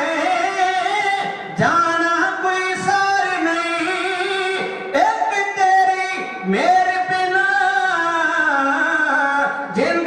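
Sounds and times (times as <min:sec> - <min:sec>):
men singing devotional ballad: 0:00.0 - 0:10.0.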